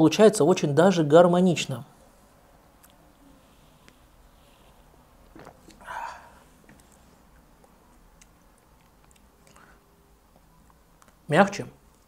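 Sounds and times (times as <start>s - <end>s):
loud breath out: 5.8s - 6.5s.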